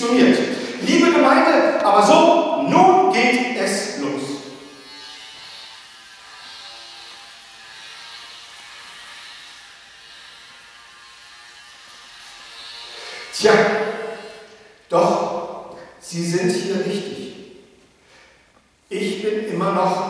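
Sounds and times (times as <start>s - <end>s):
electric shaver buzzing: 0.4s - 0.9s, 3.8s - 14.9s.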